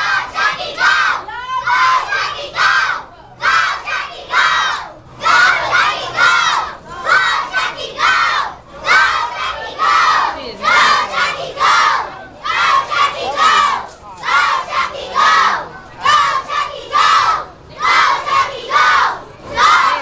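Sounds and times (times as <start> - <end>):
children shouting in rhythm: 0.0 - 20.0.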